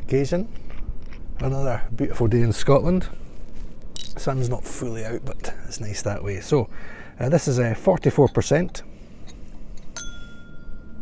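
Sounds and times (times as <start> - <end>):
bottle clinking against glass: 8.2 - 11.0.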